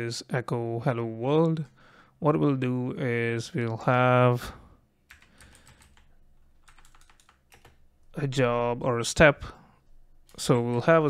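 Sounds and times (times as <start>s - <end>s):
faint keyboard typing: 5.1s - 8.2s, 9.8s - 11.0s.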